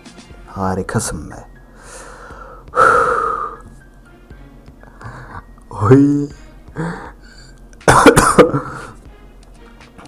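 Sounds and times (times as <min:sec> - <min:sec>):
man coughing: 0:07.8 - 0:09.0.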